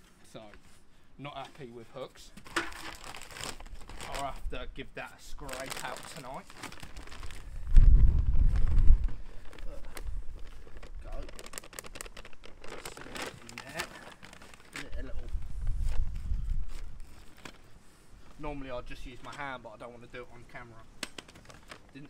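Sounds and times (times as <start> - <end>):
plastic bags rustling: 2.4 - 4.5, 5.2 - 19.3, 20.8 - 22.0
wind buffeting microphone: 7.2 - 11.0, 14.9 - 17.0.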